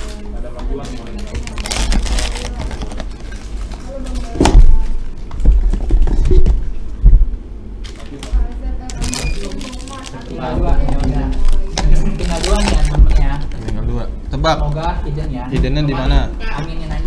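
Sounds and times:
plastic wrappers crinkling: 0.9s - 4.4s, 8.9s - 14.1s.

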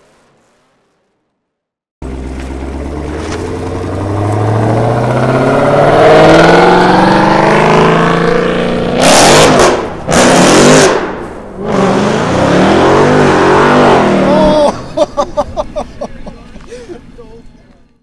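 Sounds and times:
car engine revving: 2.0s - 15.0s.

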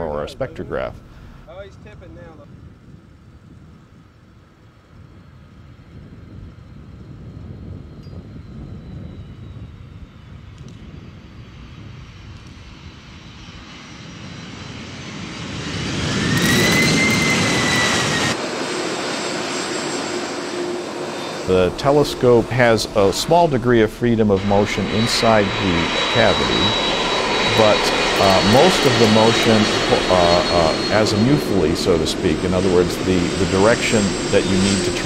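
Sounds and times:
engine whine: 0.0s - 35.0s
jet engine noise: 0.0s - 35.0s.

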